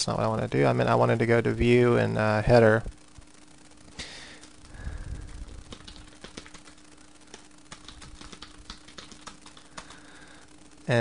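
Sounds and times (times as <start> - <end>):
faint steady hum: 0.0 - 11.0
keyboard keys clicking: 5.3 - 10.0.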